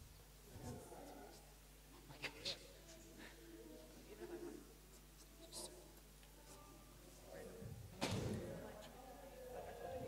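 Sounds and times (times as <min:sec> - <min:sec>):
faint indistinct voices: 0:00.4 - 0:10.0.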